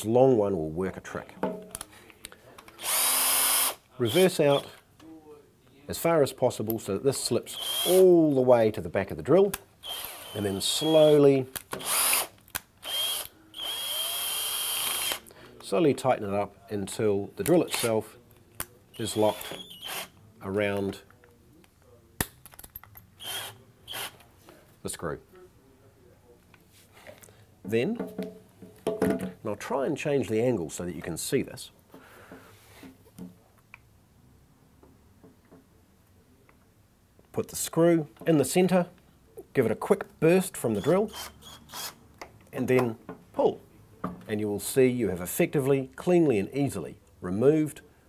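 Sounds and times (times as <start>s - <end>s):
drill chuck clicking and ticking: 2.8s - 3.8s
cordless drill running: 2.8s - 4.6s, 7.6s - 8.0s, 9.8s - 10.8s, 11.8s - 15.3s, 19.2s - 20.1s, 23.2s - 24.1s, 41.1s - 42.0s
short rasping bursts: 41.1s - 42.0s.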